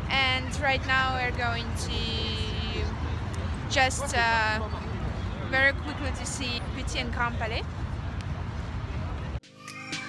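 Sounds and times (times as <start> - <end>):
traffic rumble: 0.0 - 9.4.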